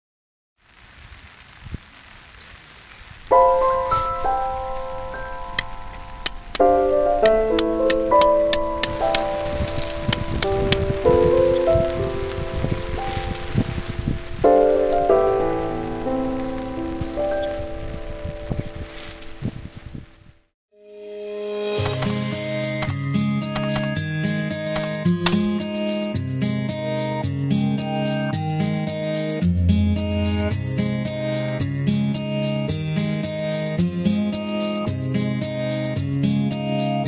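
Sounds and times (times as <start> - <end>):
rain falling: 0.6 - 6.8, 7.6 - 19.6
slow sustained music chords: 3.4 - 13.6, 14.4 - 18.2
clicks of drops striking: 6.3 - 6.7, 7.6 - 9.3.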